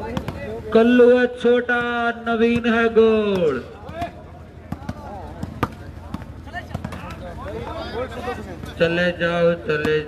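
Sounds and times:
crowd chatter: 0.0 - 1.2, 1.8 - 10.0
volleyball slaps: 2.5 - 7.2, 9.7 - 10.0.

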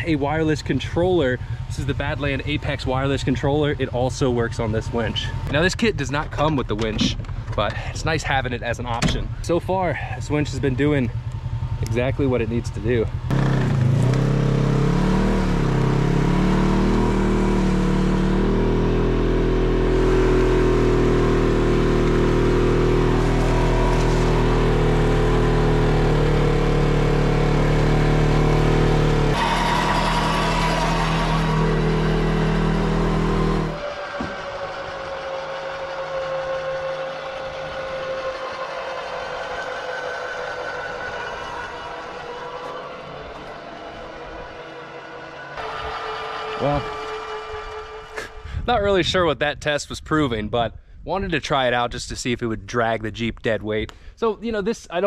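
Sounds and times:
electric winch droning: 13.2 - 48.7.

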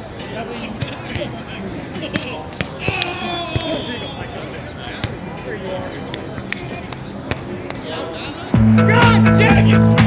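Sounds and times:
players calling out: 0.3 - 10.0.

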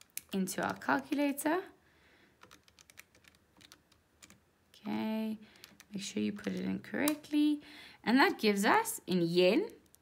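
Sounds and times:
calculator keys clicking: 0.0 - 1.2, 2.4 - 4.4, 5.5 - 7.2.

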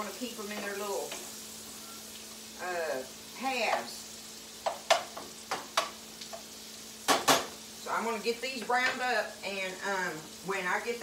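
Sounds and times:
vegetables sizzling in a skillet: 0.0 - 11.0
utensil clicking against pan: 4.6 - 6.5.

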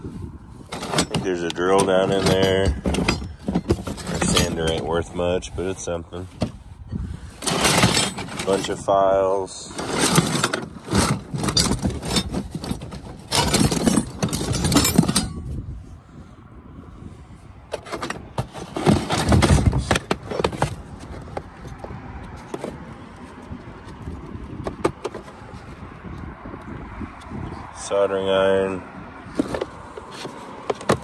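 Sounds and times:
metal tools clattering in a box: 0.6 - 5.1, 7.4 - 8.9, 9.6 - 15.5, 17.7 - 21.4.

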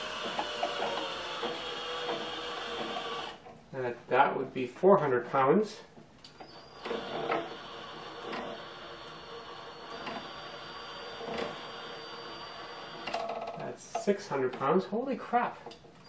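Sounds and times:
cordless drill running: 0.0 - 3.4, 6.4 - 13.3.

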